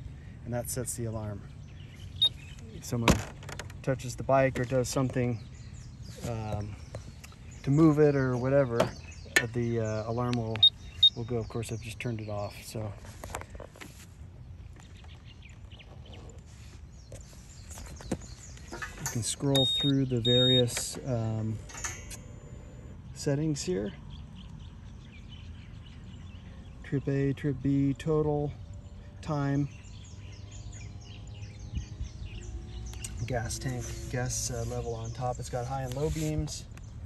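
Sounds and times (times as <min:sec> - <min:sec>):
birds chirping: 0:00.0 - 0:37.0.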